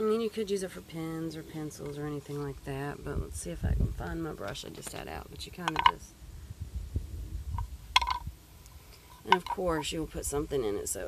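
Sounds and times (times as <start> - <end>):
wind rumble on microphone: 2.5 - 8.4.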